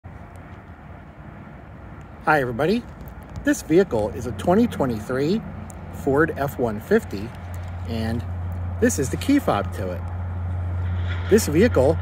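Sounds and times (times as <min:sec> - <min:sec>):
low outdoor rumble: 0:00.1 - 0:12.0.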